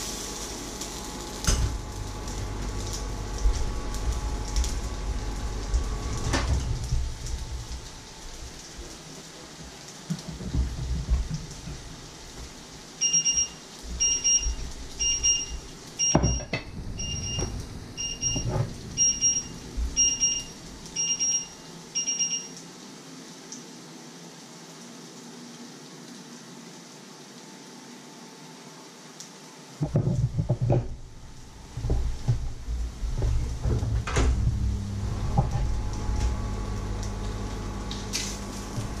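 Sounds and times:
electronic appliance beeps: 0:13.0 - 0:22.6.

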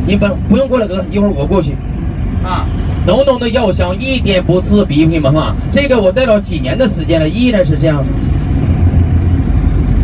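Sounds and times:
bus engine and road rumble: 0:00.0 - 0:10.0.

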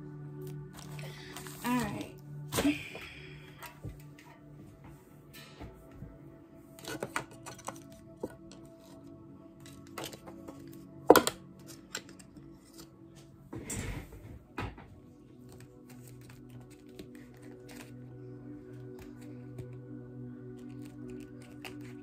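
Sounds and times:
soft background music: 0:00.0 - 0:22.0.

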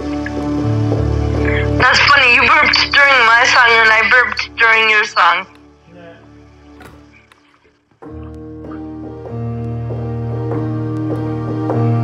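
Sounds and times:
held electronic keyboard notes: 0:00.0 - 0:06.1, 0:08.1 - 0:12.0.

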